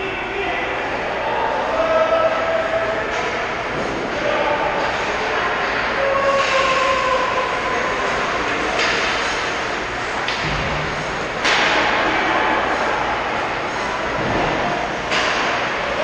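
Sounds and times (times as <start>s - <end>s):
faint distant shouts: 0.0s - 8.9s
ice rink ambience: 0.0s - 16.0s.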